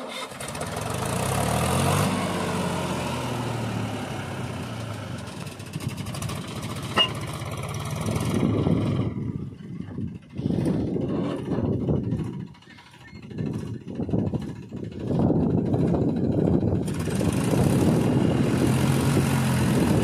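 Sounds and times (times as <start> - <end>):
tractor diesel engine under load: 0.0 - 20.0.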